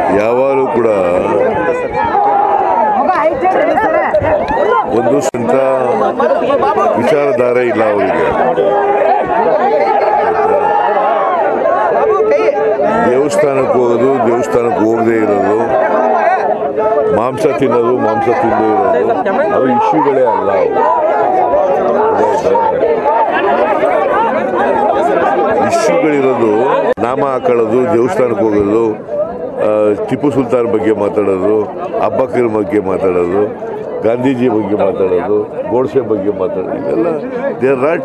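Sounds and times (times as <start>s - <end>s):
crowd chatter: 0.0s - 38.0s
men talking over one another: 0.0s - 38.0s.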